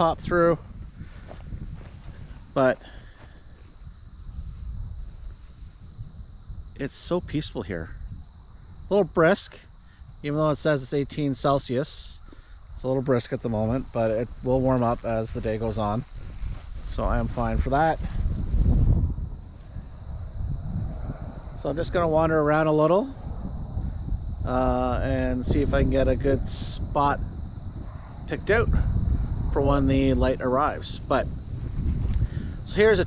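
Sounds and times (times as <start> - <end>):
crickets trilling: 0.0 - 33.0
wind buffeting microphone: 0.0 - 33.0.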